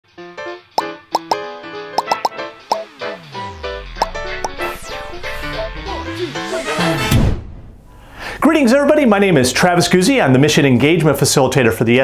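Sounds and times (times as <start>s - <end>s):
light intro music: 0.2s - 7.9s
cartoon pop blips: 0.8s - 3.2s, 4.0s - 4.6s.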